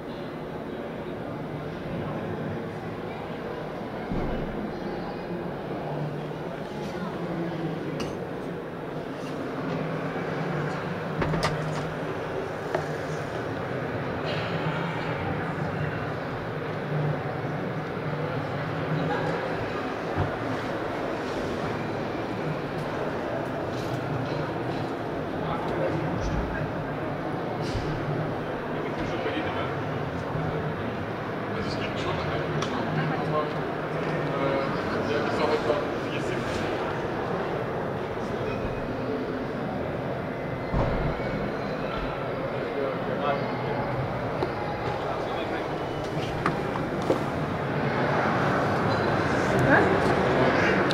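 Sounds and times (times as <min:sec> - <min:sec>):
crowd noise: 0:00.0 - 0:50.9
low rumbling hall noise: 0:00.0 - 0:50.9.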